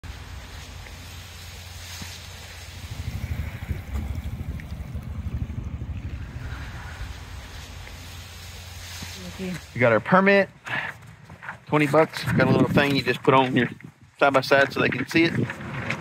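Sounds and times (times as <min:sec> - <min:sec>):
faint outdoor hush: 0:00.0 - 0:12.4
wind buffeting microphone: 0:02.5 - 0:08.7, 0:11.0 - 0:16.0.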